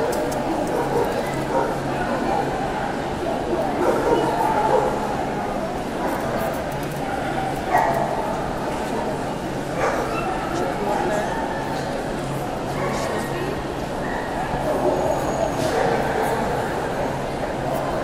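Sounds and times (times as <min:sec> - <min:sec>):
crowd chatter: 0:00.0 - 0:18.0
dog barking: 0:03.8 - 0:05.0, 0:09.8 - 0:10.3.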